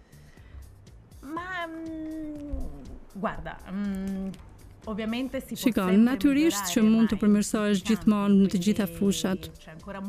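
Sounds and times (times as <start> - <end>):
faint background music: 0.0 - 10.0
woman's hesitating voice: 1.2 - 3.0, 3.6 - 4.4.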